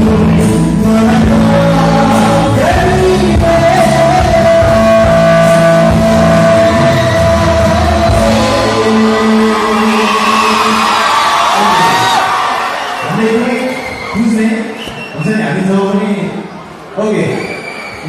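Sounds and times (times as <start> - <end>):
backing track music: 0.0 - 11.9
man singing into microphone: 0.0 - 12.2.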